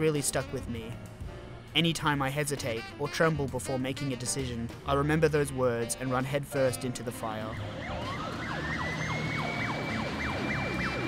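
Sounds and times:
fire engine siren yelping: 7.3s - 11.0s
siren holding high steady note: 7.3s - 11.0s
low traffic rumble: 7.4s - 11.0s.

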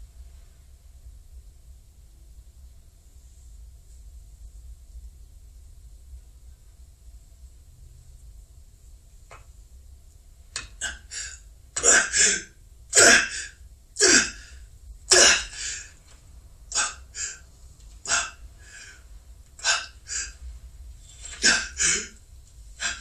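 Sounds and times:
man breathing heavily: 10.8s - 16.1s, 16.7s - 23.0s.

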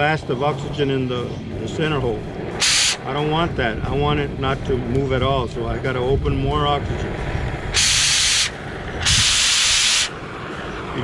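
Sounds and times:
torch flame rumble: 0.0s - 11.0s
cutting torch oxygen hissing: 2.3s - 3.1s, 6.9s - 10.9s.

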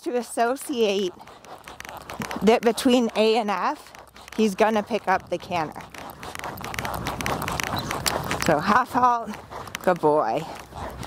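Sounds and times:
horse hoofbeats on sand: 0.0s - 11.0s.

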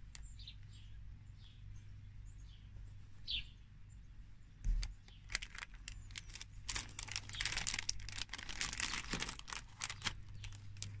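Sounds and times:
plastic bag crinkling: 5.2s - 11.0s.

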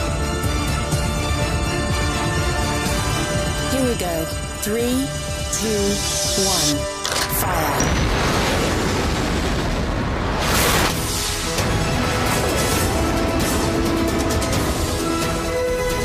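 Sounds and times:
dramatic soundtrack music: 0.0s - 16.0s
explosion blast: 7.7s - 13.6s.

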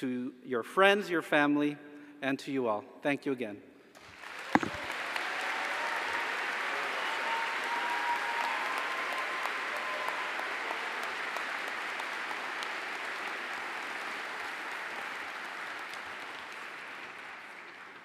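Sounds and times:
audience applauding: 4.0s - 18.0s
sharp thump: 4.6s - 4.8s.

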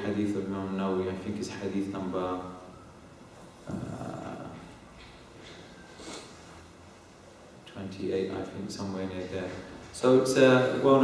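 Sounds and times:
man's low hesitation sound: 3.6s - 4.8s.

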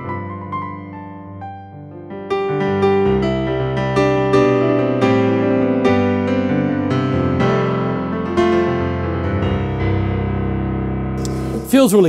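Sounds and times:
piano chord ringing: 2.4s - 12.0s.

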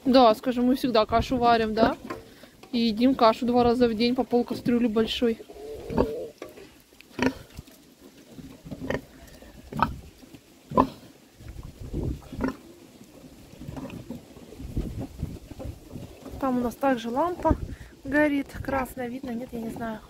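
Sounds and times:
pigs grunting: 5.1s - 7.7s, 8.4s - 10.1s, 10.7s - 11.2s, 12.1s - 12.8s.

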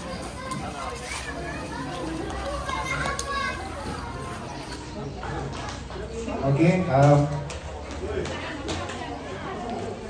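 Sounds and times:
small children calling out: 0.0s - 5.0s
crowd chatter: 0.0s - 10.0s.

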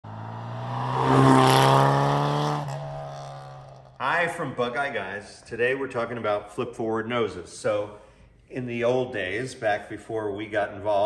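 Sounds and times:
car driving past: 0.0s - 4.0s.

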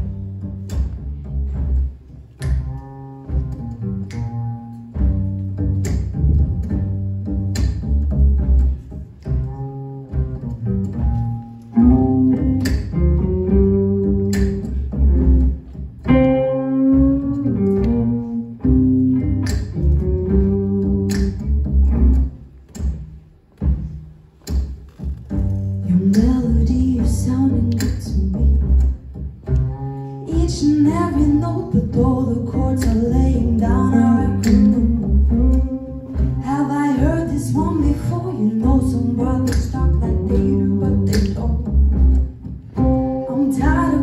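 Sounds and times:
jazz combo playing: 0.0s - 44.0s
plucked upright bass: 0.0s - 44.0s.

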